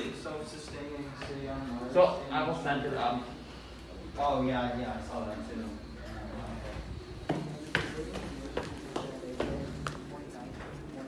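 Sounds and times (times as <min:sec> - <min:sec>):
sneaker footsteps walking: 0:00.0 - 0:02.2, 0:05.6 - 0:11.0.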